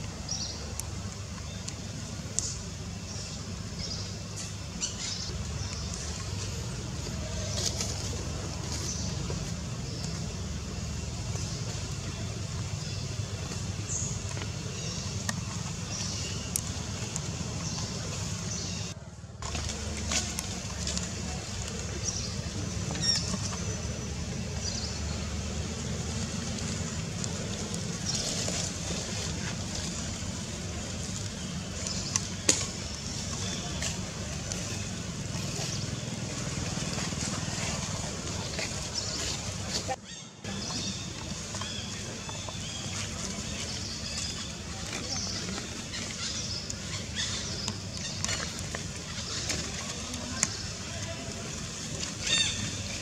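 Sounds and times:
low outdoor rumble: 0.0s - 53.0s
faint distant voices: 5.4s - 53.0s.

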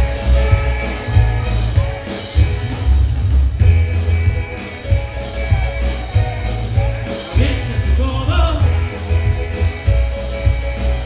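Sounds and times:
drum kit snare hits: 0.0s - 11.0s
heavy low bass: 0.0s - 11.0s
sustained guitar notes: 0.0s - 11.0s.

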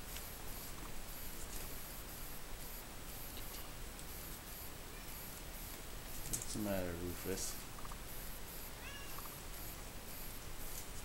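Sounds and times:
cat meowing: 8.8s - 9.2s.

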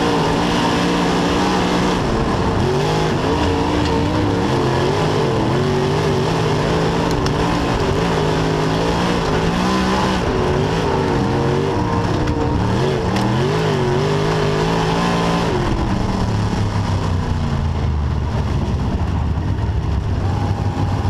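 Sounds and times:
race car engine revving: 0.0s - 21.0s.

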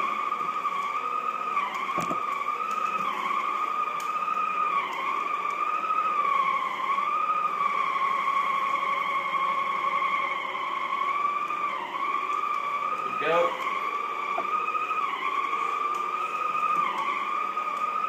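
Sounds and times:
floor cleaner motor whine: 0.0s - 18.0s.

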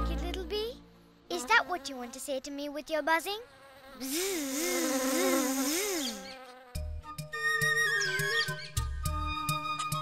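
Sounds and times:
bee buzzing: 1.2s - 7.9s.

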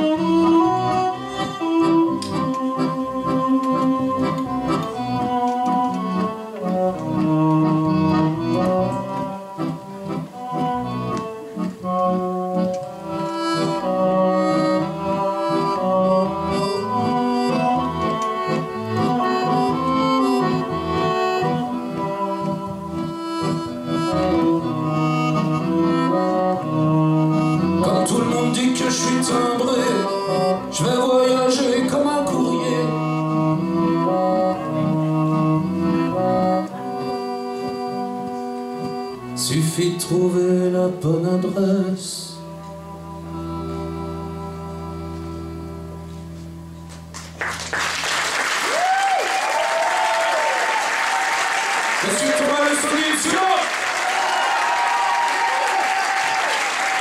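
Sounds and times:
sustained melody notes: 0.0s - 47.8s
upright double bass: 0.0s - 48.9s.

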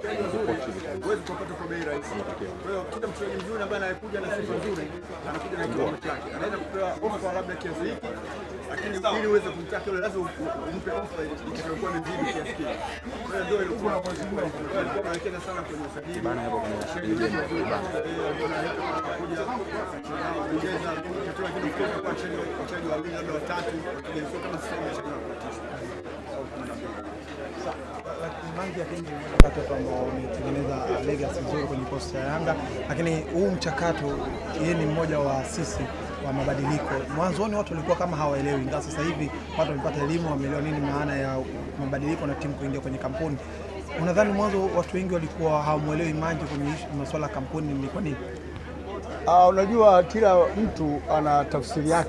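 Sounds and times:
faint chattering voices: 0.0s - 52.0s.

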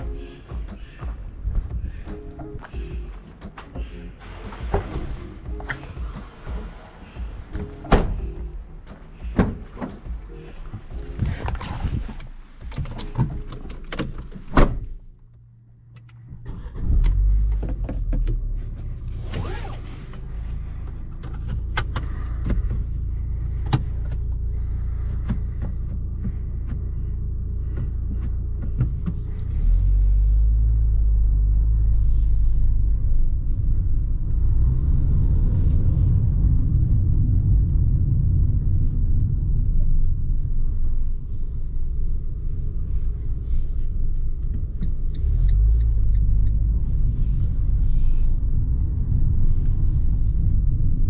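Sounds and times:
turn signal ticking: 0.0s - 14.5s, 15.1s - 51.0s
car cabin rumble on cobblestones: 0.0s - 51.0s.

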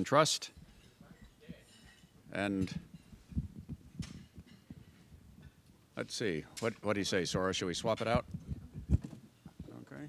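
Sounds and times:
microphone handling thumps: 2.7s - 5.5s, 8.1s - 9.8s.

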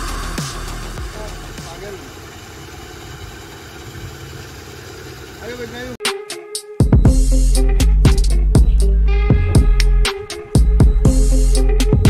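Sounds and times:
scooter engine idling: 0.0s - 6.0s.

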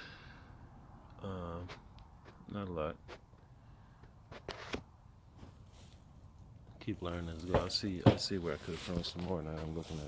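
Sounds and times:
dry leaf litter crackling: 6.9s - 10.0s.

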